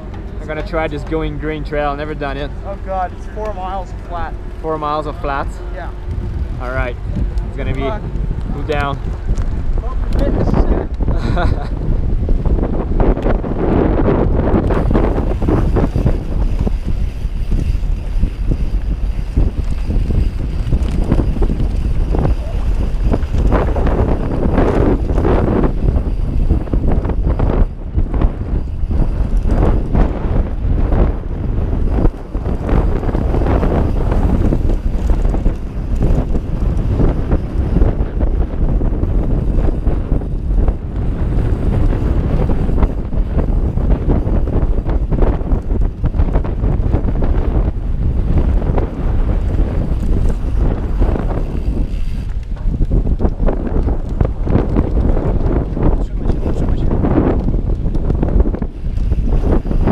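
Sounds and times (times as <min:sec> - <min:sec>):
bike tyre noise: 0:00.0 - 0:59.9
wind rush on microphone: 0:00.0 - 0:59.9.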